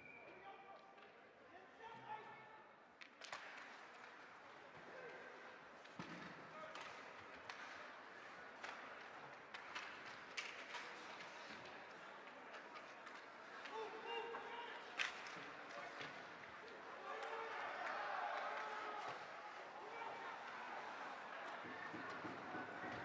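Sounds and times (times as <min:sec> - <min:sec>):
hockey sticks hitting puck: 0:05.8 - 0:11.7, 0:21.1 - 0:23.0.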